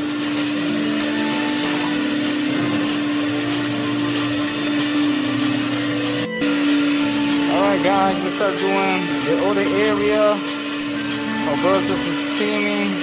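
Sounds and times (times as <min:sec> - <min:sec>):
carpet extractor suction rush: 0:00.0 - 0:13.0.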